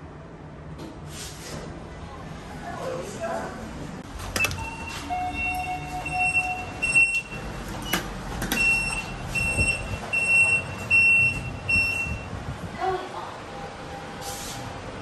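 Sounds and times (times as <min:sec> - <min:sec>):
electronic panel beeping: 0:04.4 - 0:12.3.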